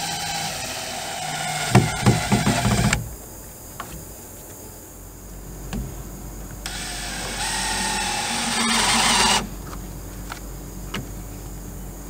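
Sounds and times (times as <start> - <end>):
drill driving screw into wood: 0.0 - 3.1, 6.7 - 9.5
faint knocks: 1.6 - 4.6.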